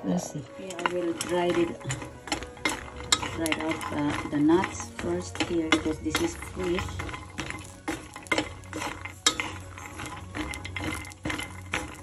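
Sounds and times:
nuts clattering in a pan: 0:00.3 - 0:12.0
spatula scraping a pan: 0:00.4 - 0:12.0.

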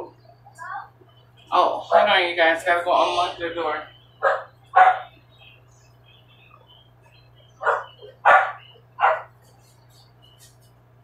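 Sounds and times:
dog barking: 0:04.2 - 0:05.2, 0:07.6 - 0:09.4.

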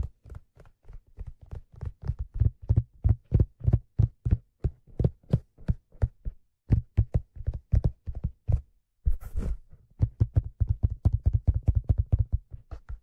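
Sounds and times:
fingertips tapping on leather hat: 0:00.0 - 0:09.2, 0:09.9 - 0:13.0.

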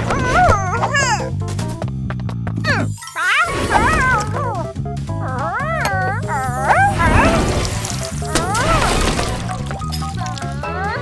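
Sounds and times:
cartoon background music: 0:00.0 - 0:11.0
wordless cartoon vocal noises: 0:02.7 - 0:09.4.

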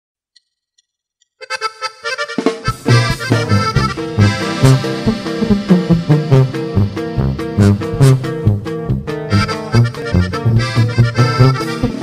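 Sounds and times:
button accordion: 0:01.4 - 0:12.0
bass and drums: 0:02.3 - 0:12.0.

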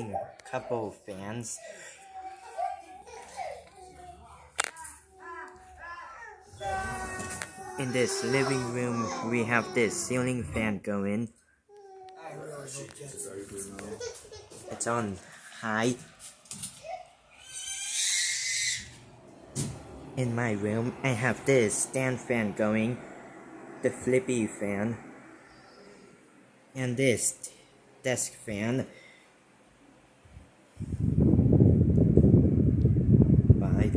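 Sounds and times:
fan wind buffeting microphone: 0:17.5 - 0:28.7, 0:30.1 - 0:33.9.

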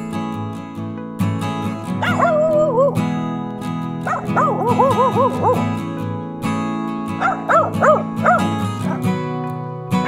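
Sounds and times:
background music with held notes: 0:00.0 - 0:10.0
dog yelping: 0:02.0 - 0:03.0, 0:04.0 - 0:05.8, 0:07.2 - 0:09.1.

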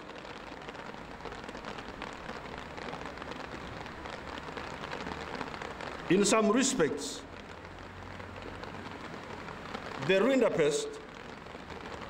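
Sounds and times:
steady rain falling: 0:00.0 - 0:12.0.

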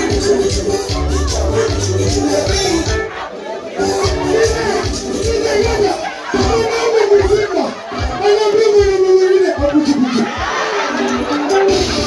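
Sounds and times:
low thumping beat: 0:00.0 - 0:03.1, 0:03.9 - 0:12.0
crowd cheering and shouting: 0:00.0 - 0:12.0.

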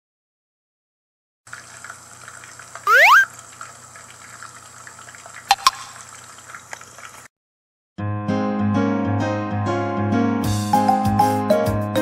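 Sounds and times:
faint liquid sounds: 0:01.5 - 0:07.3.

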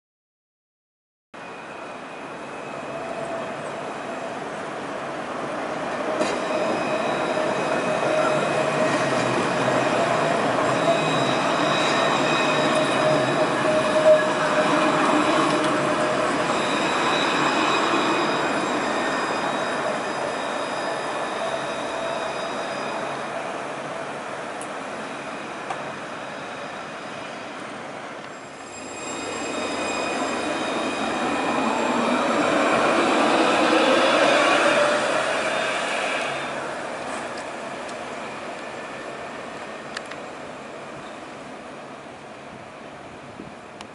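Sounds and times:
approaching tram whine: 0:01.4 - 0:43.8
tram rumble: 0:01.4 - 0:43.9
tram wheels squealing on rails: 0:01.4 - 0:43.9.

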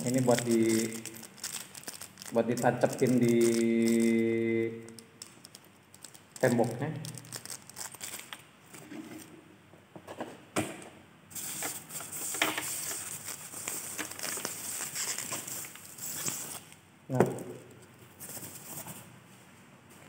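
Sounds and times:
plastic wrap crinkling: 0:00.0 - 0:08.5, 0:11.3 - 0:19.0.

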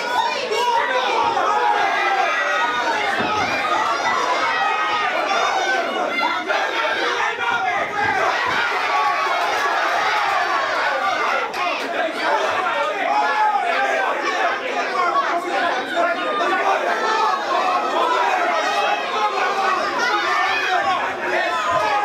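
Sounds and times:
crowd chattering and shouting: 0:00.0 - 0:22.0.

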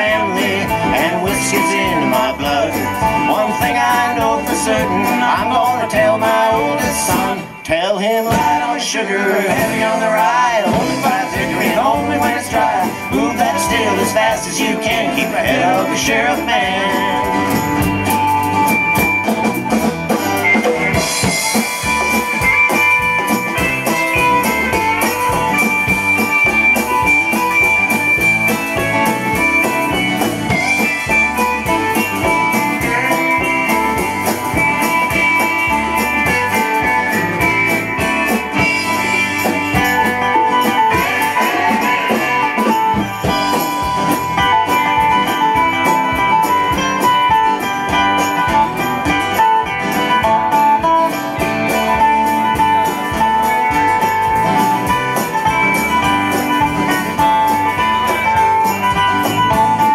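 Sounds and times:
drums: 0:00.0 - 0:59.9
electric bass: 0:00.0 - 0:59.9
strummed acoustic guitars: 0:00.0 - 0:59.9
lead instrument long high notes: 0:15.2 - 0:59.9.

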